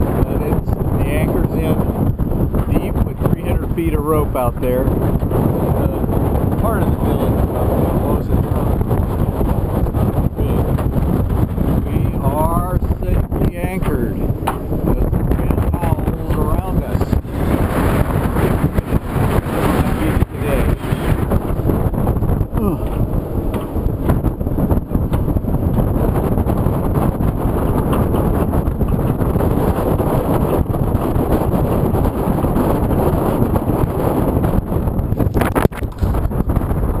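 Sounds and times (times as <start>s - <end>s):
gusty wind buffeting microphone: 0.0s - 37.0s.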